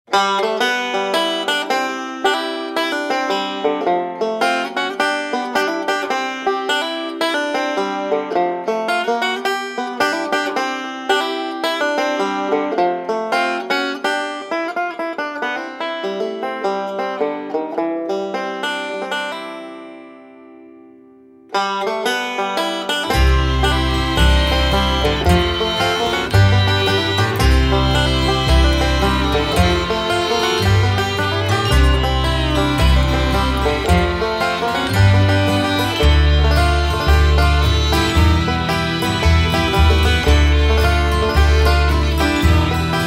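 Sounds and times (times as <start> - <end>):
banjo picking: 0.1 - 43.0.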